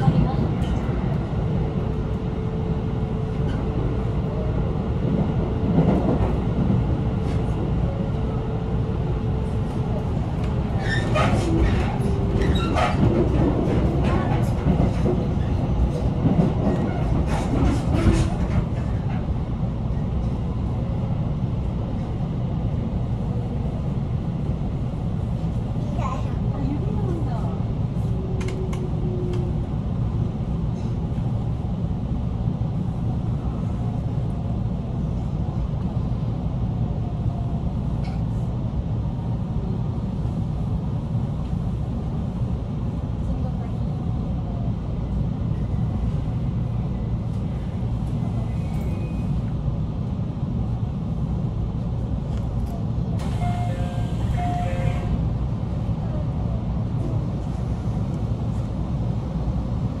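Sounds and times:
train interior rumble: 0:00.0 - 1:00.0.

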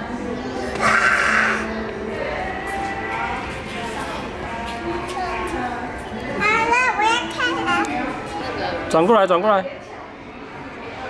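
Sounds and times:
child vocalizing: 0:00.8 - 0:01.7.

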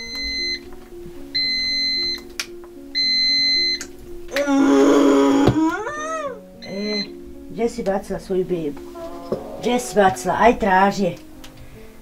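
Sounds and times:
background music with held notes: 0:00.0 - 0:12.0
pump beeping: 0:03.0 - 0:03.8, 0:06.6 - 0:07.1.

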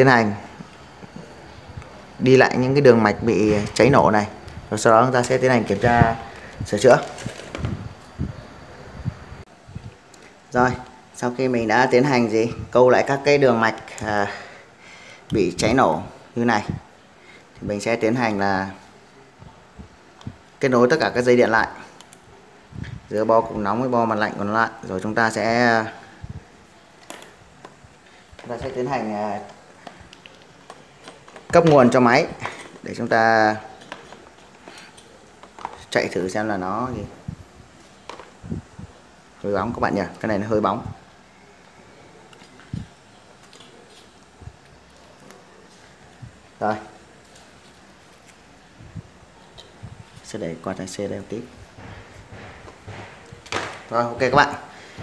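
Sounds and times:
man talking: 0:00.0 - 0:00.6, 0:02.2 - 0:07.4, 0:10.5 - 0:14.5, 0:15.3 - 0:16.9, 0:23.0 - 0:26.2, 0:28.4 - 0:29.6, 0:31.5 - 0:33.8, 0:35.8 - 0:37.4, 0:39.4 - 0:41.0, 0:46.6 - 0:47.0, 0:50.2 - 0:51.6, 0:53.8 - 0:54.8
low room noise: 0:00.0 - 0:55.0.

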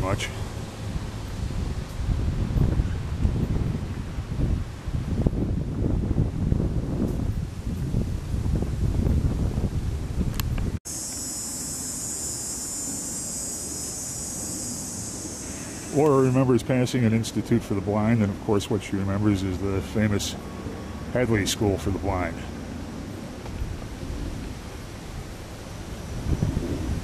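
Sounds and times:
wind buffeting microphone: 0:00.7 - 0:10.8, 0:22.8 - 0:27.0
steady high-pitched hiss: 0:10.8 - 0:27.0.

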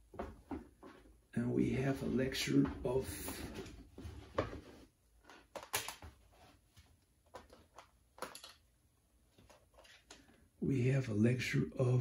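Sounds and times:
clicks and taps of small objects: 0:07.3 - 0:08.6.

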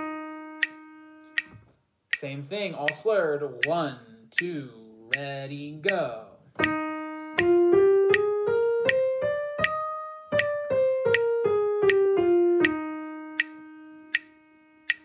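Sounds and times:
piano scale: 0:00.0 - 0:01.6, 0:06.6 - 0:15.0
metronome ticking: 0:00.0 - 0:15.0.

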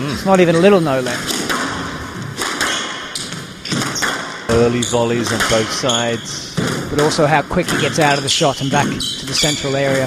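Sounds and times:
squash ball sharp thuds: 0:01.2 - 0:10.0.

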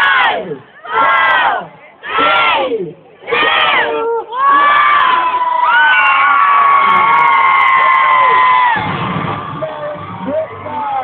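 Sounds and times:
crowd cheering and screaming: 0:03.3 - 0:11.0
long high screams: 0:04.4 - 0:08.9.

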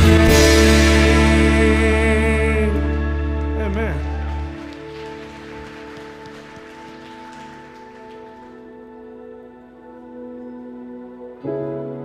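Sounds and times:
keyboard pad chords: 0:00.0 - 0:12.0.

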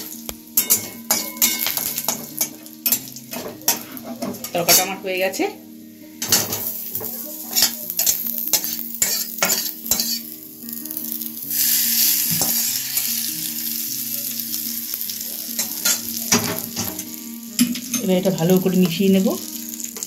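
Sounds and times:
hot oil sizzling: 0:00.0 - 0:20.0
metal pan clinking: 0:00.6 - 0:05.0, 0:06.2 - 0:10.3, 0:15.6 - 0:18.2.

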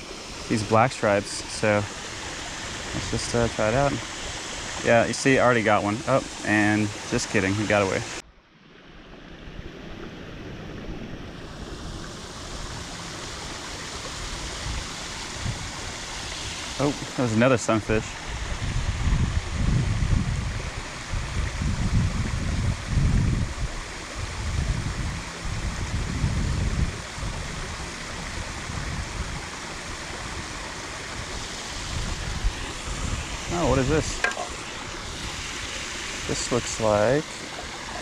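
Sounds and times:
creek water rushing: 0:00.0 - 0:38.0
person's voice: 0:04.8 - 0:08.1, 0:33.5 - 0:34.7, 0:36.3 - 0:38.0
wind buffeting microphone: 0:14.2 - 0:17.2, 0:18.0 - 0:38.0.

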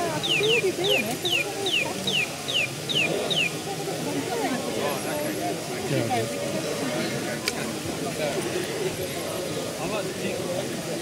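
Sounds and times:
murmur of voices: 0:00.0 - 0:11.0
mechanical bird whistled chirps: 0:00.2 - 0:03.5.

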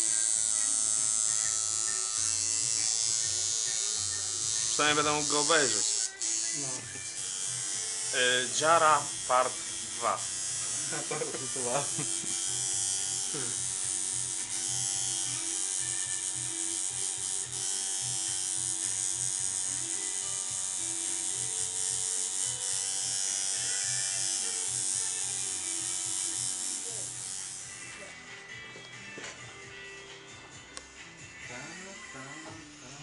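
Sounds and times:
tattoo machine buzzing: 0:00.0 - 0:28.4.

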